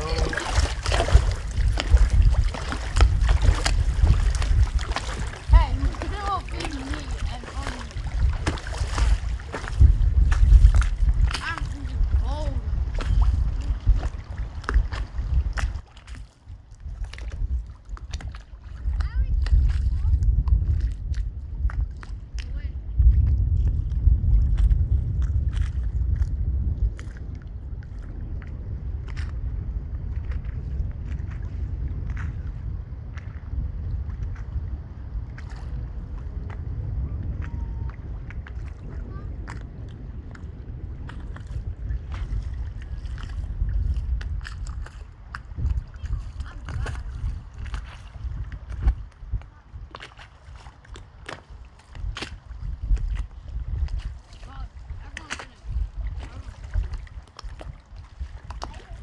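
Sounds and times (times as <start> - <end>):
small waves lapping and splashing: 0.0 - 59.0
wind buffeting microphone: 0.0 - 59.0.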